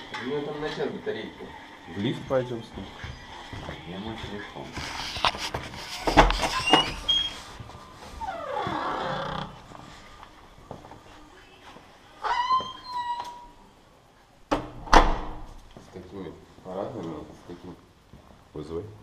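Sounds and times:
door squealing: 0:06.3 - 0:07.4, 0:08.2 - 0:09.6, 0:12.2 - 0:13.6
door banging shut: 0:14.5 - 0:15.5.

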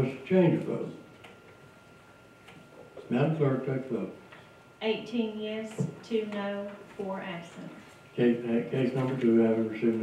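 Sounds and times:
faint high hum: 0:00.0 - 0:10.0.

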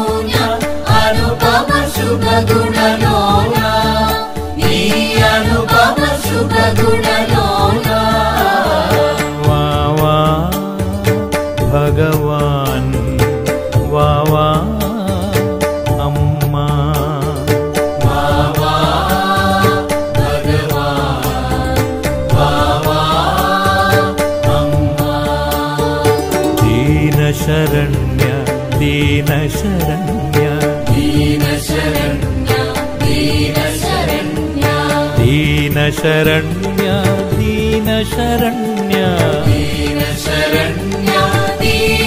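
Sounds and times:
person singing devotional chant: 0:00.0 - 0:42.0
steady percussion: 0:00.0 - 0:42.0
low bass: 0:20.2 - 0:38.4.

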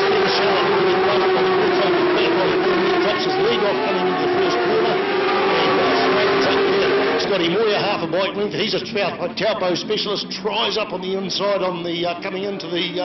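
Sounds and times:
motorcycle engines at high revs: 0:00.0 - 0:13.0.

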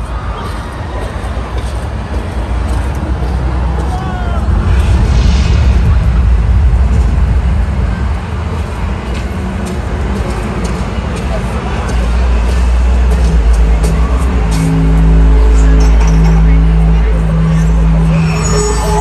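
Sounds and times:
deep bass rumble: 0:00.0 - 0:19.0
held low musical notes: 0:01.9 - 0:19.0.

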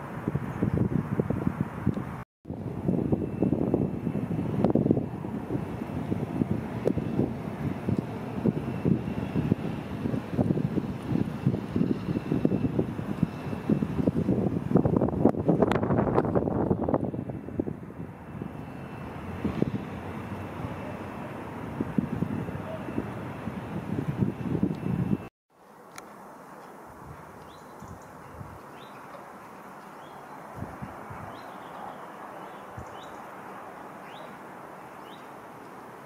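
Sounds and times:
low outdoor rumble: 0:01.7 - 0:27.1.

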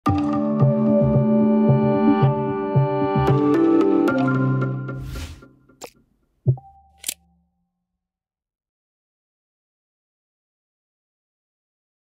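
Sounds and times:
sharp click: 0:06.9 - 0:07.3.

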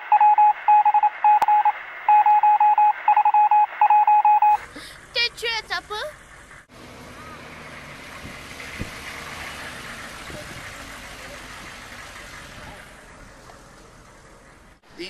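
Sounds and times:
van engine running: 0:04.4 - 0:15.0.

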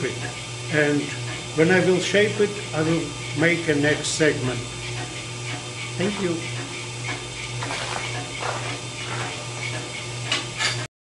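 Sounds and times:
wood lathe humming: 0:00.0 - 0:10.1.

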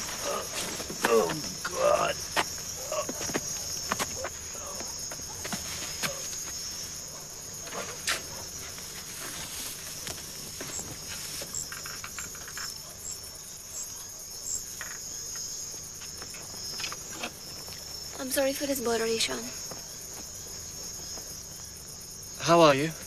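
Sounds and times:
insects chirring: 0:00.0 - 0:23.0.

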